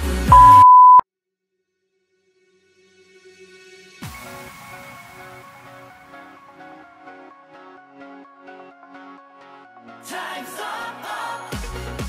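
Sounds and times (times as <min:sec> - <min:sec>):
electronic dance-pop music: 0:00.0 - 0:00.7
loud high beep: 0:00.3 - 0:01.0.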